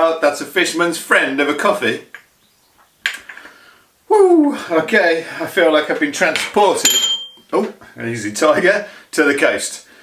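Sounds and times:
sharp breath out: 3.2 - 4.0.

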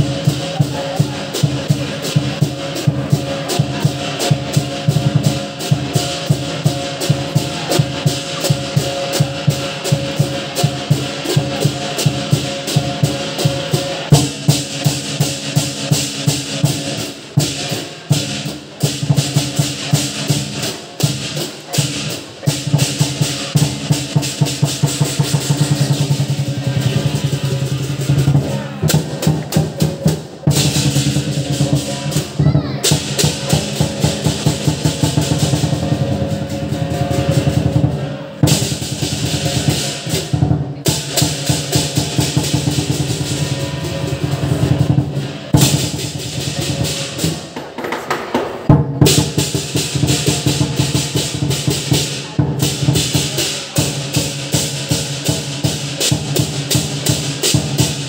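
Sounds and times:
cymbals clashing: 0.0 - 47.8, 48.5 - 58.0
drum beaten fast: 0.0 - 58.0.

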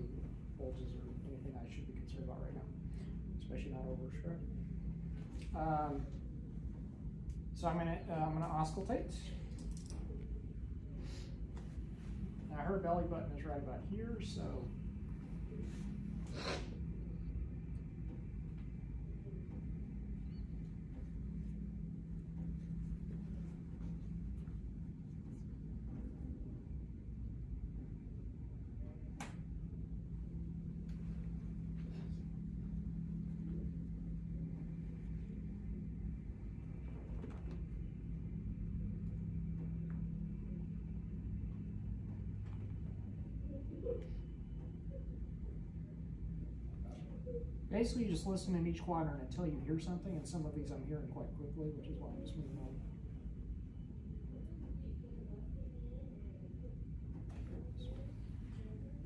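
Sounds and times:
low room tone hum: 0.0 - 59.0.

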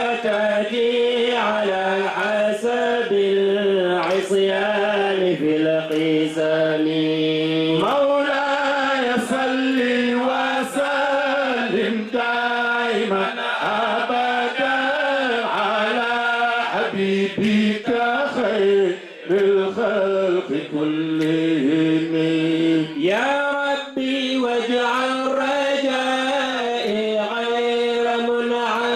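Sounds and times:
man chanting through microphone: 0.0 - 28.9.

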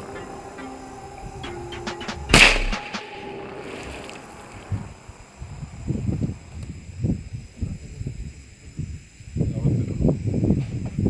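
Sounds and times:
loud gunshot: 2.3 - 3.3.

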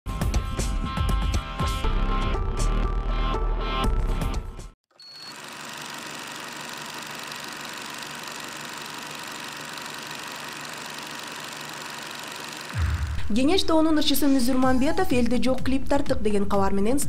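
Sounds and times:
film projector running: 5.0 - 13.1
intro music: 12.7 - 14.8.

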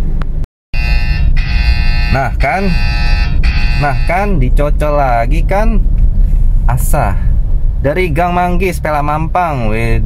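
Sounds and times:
car cabin rumble: 0.0 - 10.0
phone alert buzzer tone: 0.8 - 4.1.

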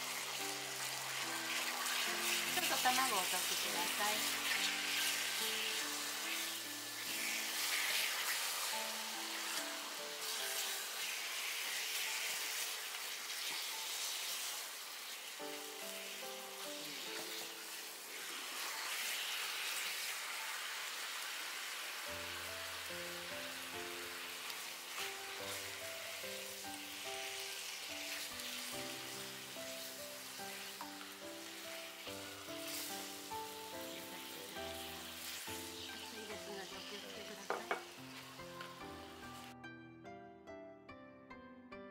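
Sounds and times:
beef sizzling in a pan: 0.0 - 39.6
background music: 0.0 - 41.9.

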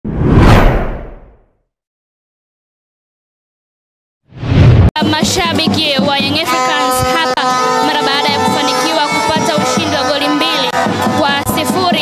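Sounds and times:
deep whoosh: 0.0 - 1.4, 4.3 - 4.9.

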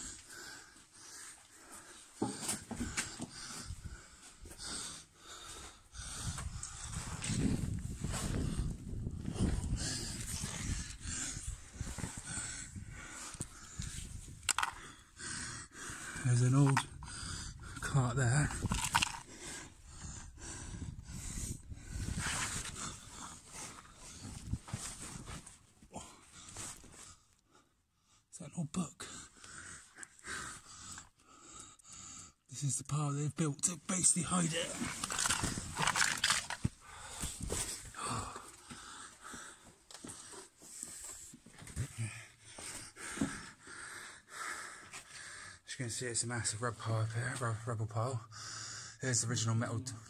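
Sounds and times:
man panting and grunting: 0.0 - 24.4, 25.9 - 26.8, 28.4 - 32.6, 33.9 - 45.8
loose stones scraping and knocking: 14.4 - 14.8, 16.5 - 17.0, 18.3 - 19.3, 34.5 - 36.8.

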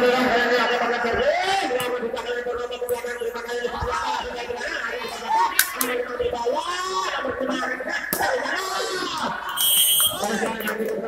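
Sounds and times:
crowd noise: 0.0 - 11.0
voices calling out: 0.0 - 11.0
referee's whistle blast: 9.5 - 10.3.

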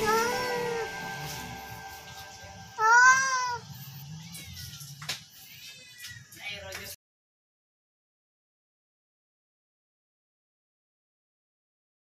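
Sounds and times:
cat meowing softly: 2.8 - 3.6.

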